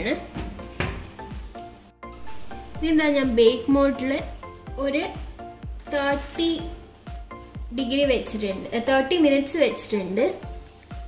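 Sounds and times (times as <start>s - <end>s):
oven door closing knock: 0.4s - 1.2s.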